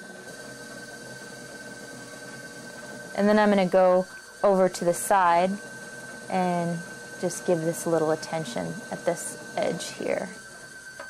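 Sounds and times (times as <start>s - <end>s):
pottery wheel whine: 0.0s - 11.0s.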